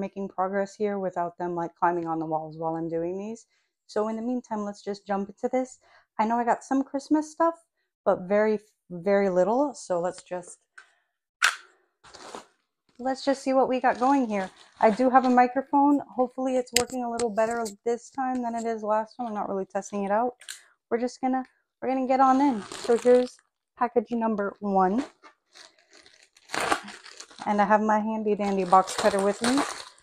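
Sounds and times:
plastic bag crinkling: 12.0s - 12.6s, 13.8s - 15.5s, 22.3s - 23.4s, 25.0s - 30.0s.

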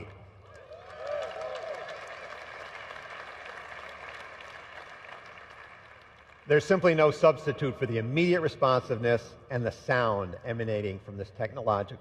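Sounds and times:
audience applause: 0.0s - 6.5s
cheers and whoop: 0.5s - 2.2s.

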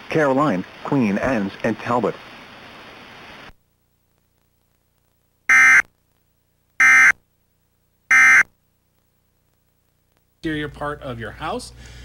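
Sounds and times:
harsh digital buzzes: 5.5s - 5.9s, 6.8s - 7.2s, 8.1s - 8.5s.

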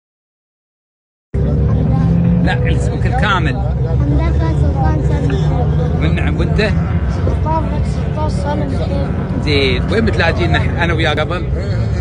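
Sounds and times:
low background rumble: 1.4s - 12.0s
man talking: 1.5s - 4.0s, 5.3s - 7.0s, 9.3s - 12.0s
boy talking: 2.9s - 6.3s, 7.2s - 10.6s.

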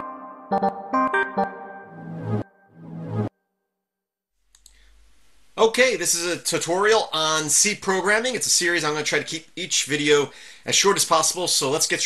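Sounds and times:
faint room hum: 4.4s - 12.0s
short clicks: 4.5s - 4.8s.

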